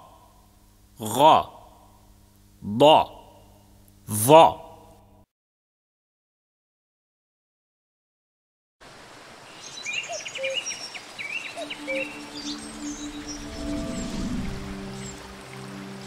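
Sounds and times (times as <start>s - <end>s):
running water hiss: 8.8s - 16.0s
birds chirping: 9.4s - 16.0s
soft sustained music tones: 10.4s - 16.0s
low whoosh: 12.6s - 15.8s.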